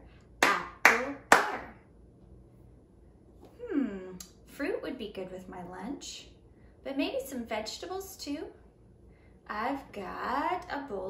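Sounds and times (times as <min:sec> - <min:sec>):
sharp hand claps: 0:00.4 - 0:01.7.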